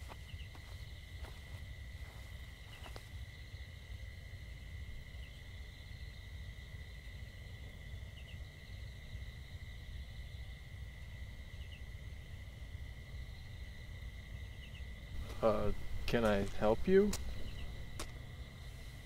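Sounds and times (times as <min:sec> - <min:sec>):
insects droning: 0:00.0 - 0:19.0
low rumble: 0:15.2 - 0:18.4.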